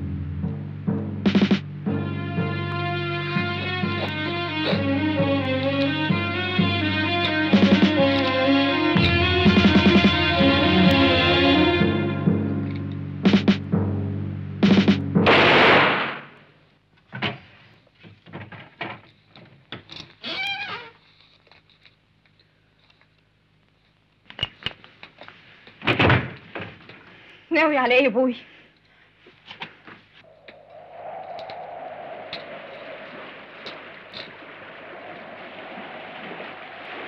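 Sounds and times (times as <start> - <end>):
dramatic film score with guitar: 1.8 - 14.0
harsh burst of noise: 15.2 - 16.4, 30.3 - 37.0.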